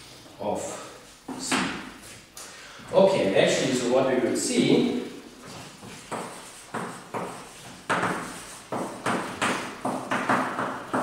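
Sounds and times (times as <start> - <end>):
chalk scratching on blackboard: 5.4 - 11.0.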